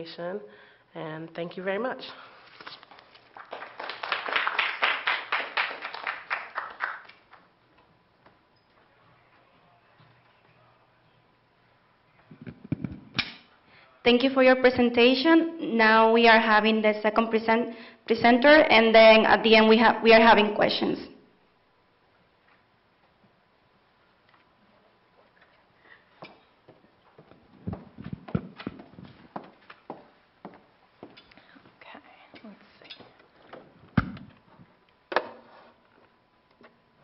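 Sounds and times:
audience applauding: 3.3 - 7.5.

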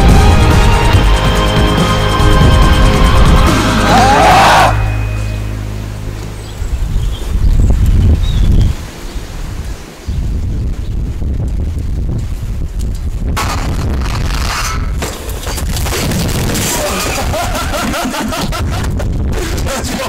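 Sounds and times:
backing song final hit: 0.0 - 6.1
wind rumble on microphone: 6.1 - 20.0.

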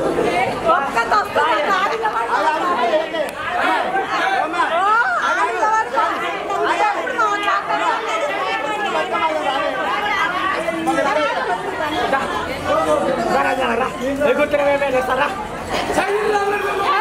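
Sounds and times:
women talking and calling out: 0.5 - 13.3.

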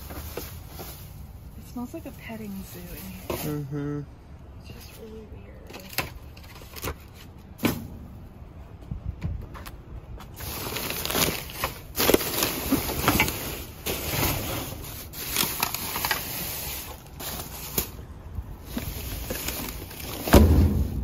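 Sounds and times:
plastic bags rustling: 0.0 - 3.7, 10.3 - 21.0
thump in metal dumpster: 20.2 - 21.0.

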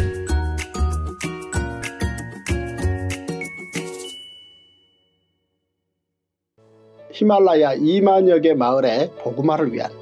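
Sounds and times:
music jingle chord: 0.0 - 5.7
high bell-like ding: 3.4 - 5.5.

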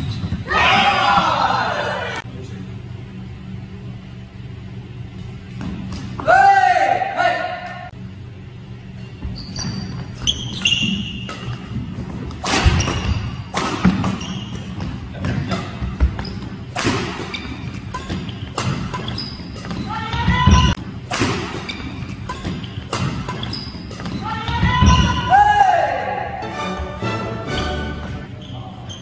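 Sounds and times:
court shoes squeaking: 0.0 - 2.2, 4.9 - 6.3, 7.6 - 25.5, 26.8 - 29.0
racket striking shuttlecock: 11.1 - 14.7, 15.4 - 25.2.

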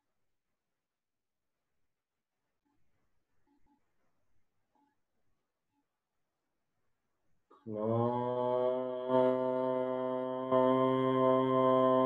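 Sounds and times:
man chanting low tone: 7.7 - 12.0.

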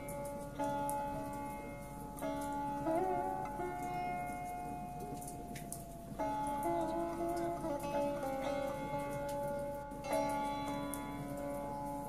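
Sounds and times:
plucked sitar notes: 0.0 - 12.0.

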